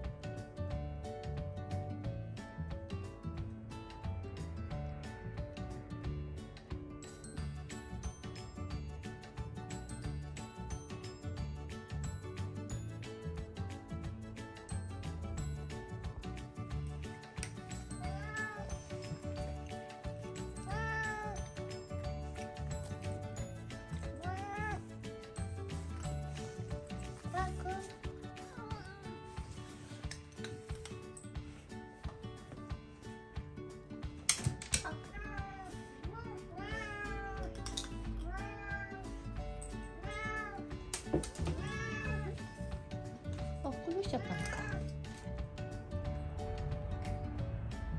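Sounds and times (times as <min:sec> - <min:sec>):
background music: 0:00.0 - 0:47.9
cat meowing: 0:18.0 - 0:18.8, 0:20.7 - 0:21.5, 0:24.2 - 0:24.8, 0:34.8 - 0:37.6, 0:38.2 - 0:39.2, 0:40.0 - 0:40.7, 0:41.4 - 0:42.5, 0:44.0 - 0:44.9.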